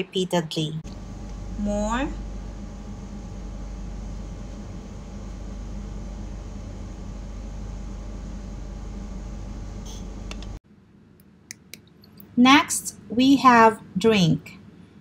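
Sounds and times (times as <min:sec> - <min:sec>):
room hum and hiss: 0:00.0 - 0:15.0.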